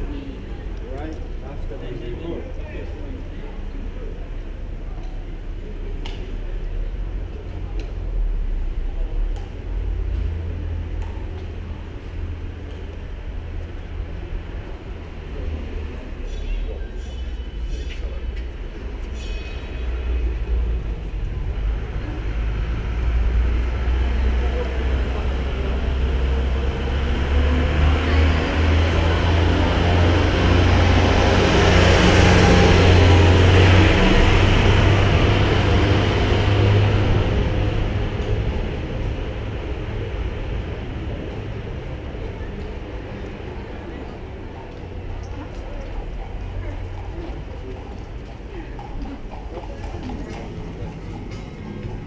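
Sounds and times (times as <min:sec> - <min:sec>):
heavy vehicle engine passing: 0:05.7 - 0:52.0.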